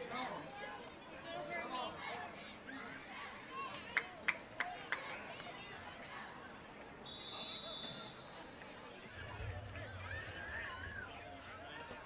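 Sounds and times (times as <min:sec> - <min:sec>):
referee's whistle: 0:07.0 - 0:08.4.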